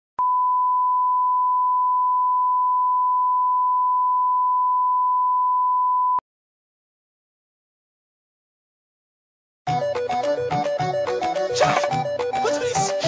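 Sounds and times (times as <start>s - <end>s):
sine test tone: 0.2s - 6.2s.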